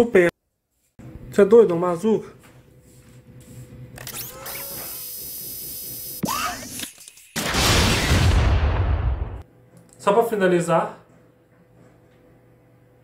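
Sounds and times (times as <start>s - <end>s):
loud rumbling explosion: 7.5s - 9.4s.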